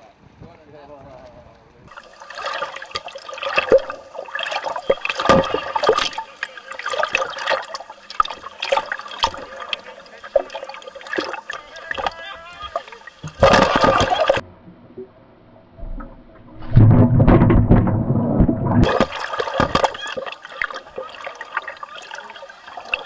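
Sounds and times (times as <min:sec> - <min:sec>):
loud rush of bubbles: 0:01.9 - 0:12.1, 0:12.7 - 0:14.4, 0:15.8 - 0:23.0
sharp splashes and knocks: 0:01.9 - 0:14.4, 0:15.8 - 0:22.2
underwater churning and bubbling: 0:01.9 - 0:23.0.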